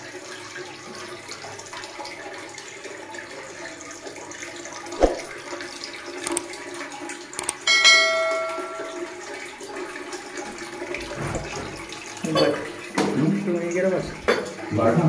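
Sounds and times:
bell chime: 0:07.7 - 0:09.2.

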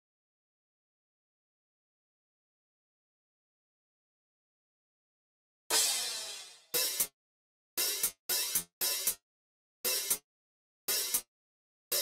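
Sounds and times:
short bright cymbal hits: 0:05.7 - 0:07.0
electronic cymbal crash: 0:05.7 - 0:07.1.

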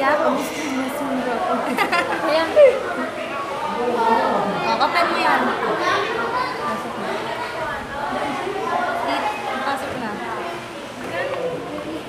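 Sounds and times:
girls chattering: 0:00.0 - 0:12.0.

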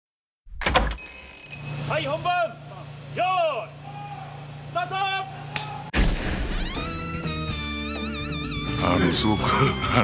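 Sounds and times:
man talking: 0:08.7 - 0:10.0.

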